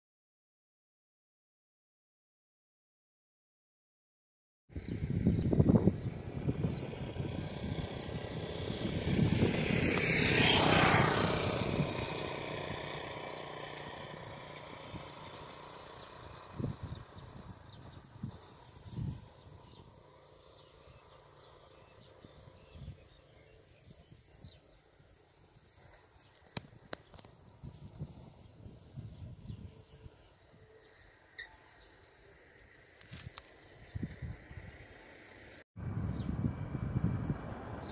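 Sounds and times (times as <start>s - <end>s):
vehicle passing close by: 4.8s - 26.9s, 33.8s - 37.9s.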